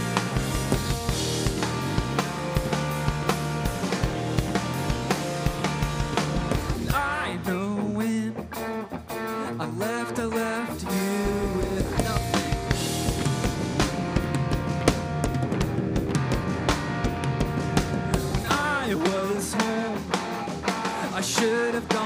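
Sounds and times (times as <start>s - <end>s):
drum kit beat: 0.0s - 22.0s
electric bass: 0.0s - 22.0s
electric guitar: 0.0s - 22.0s
person singing: 6.9s - 12.8s, 18.3s - 22.0s.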